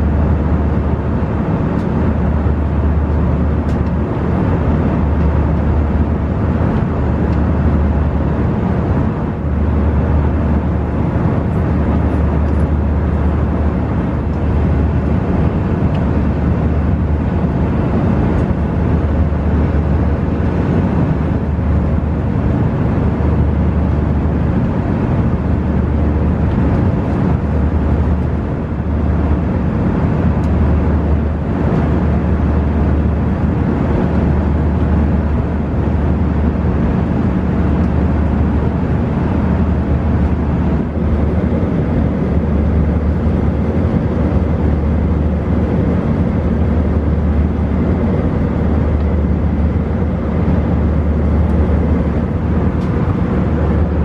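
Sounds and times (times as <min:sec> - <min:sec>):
aircraft cabin engine and airflow rush: 0:00.0 - 0:54.0
low throbbing drone: 0:00.0 - 0:54.0.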